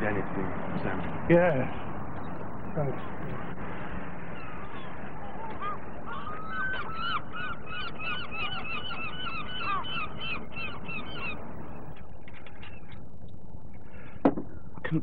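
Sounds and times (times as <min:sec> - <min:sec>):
gulls calling: 0:00.0 - 0:15.0.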